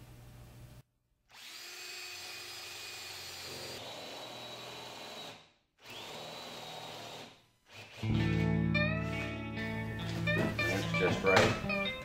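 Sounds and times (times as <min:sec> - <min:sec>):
power drill boring into wood: 0:01.3 - 0:08.1.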